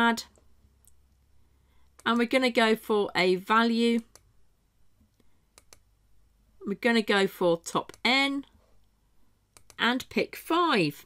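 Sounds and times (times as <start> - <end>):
computer mouse clicks: 4.0 - 4.3, 5.1 - 5.9, 7.8 - 8.1, 9.5 - 9.8.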